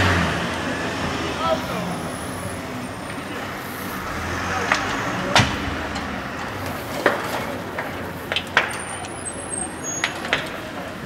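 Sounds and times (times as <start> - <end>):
cars burning: 0.0 - 11.0
fire engine running: 0.0 - 11.0.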